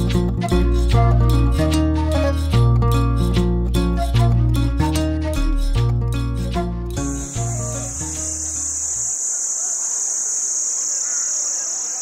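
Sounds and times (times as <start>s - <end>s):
background music: 0.0s - 8.7s
insects chirring: 7.0s - 12.0s.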